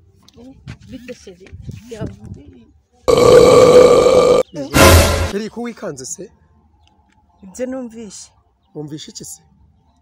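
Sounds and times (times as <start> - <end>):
loud harsh buzz: 3.1 - 5.4.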